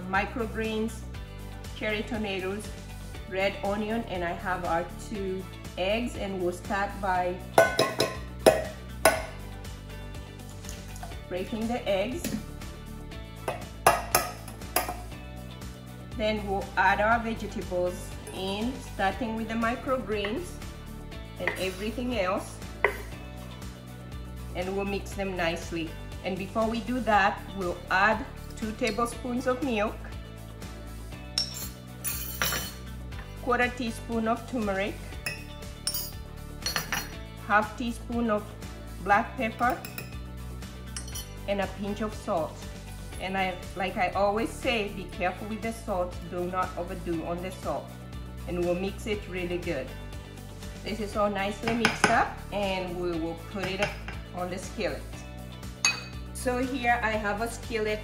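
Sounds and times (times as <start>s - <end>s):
background music: 0.0s - 58.0s
metal spoon clinking on bowl: 7.6s - 9.3s, 31.4s - 32.8s, 35.2s - 37.2s, 39.7s - 40.2s, 41.0s - 41.3s, 55.8s - 56.2s
egg tapping metal bowl rim: 7.6s - 9.4s, 13.5s - 15.0s.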